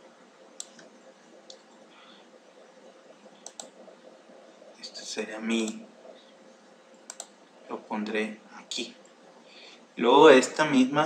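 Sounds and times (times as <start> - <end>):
faint room noise: 0.0 - 11.0
computer mouse clicks: 0.6 - 1.8, 3.2 - 3.9, 5.6 - 5.8, 7.0 - 7.4.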